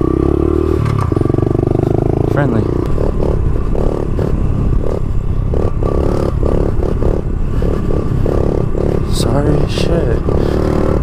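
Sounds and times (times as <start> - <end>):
small motorbike engine revving: 0.0 - 11.0
wind and road noise: 0.0 - 11.0.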